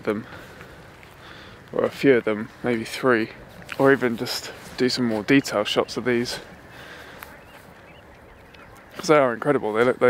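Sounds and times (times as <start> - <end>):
distant bird chirps: 3.3 - 9.8.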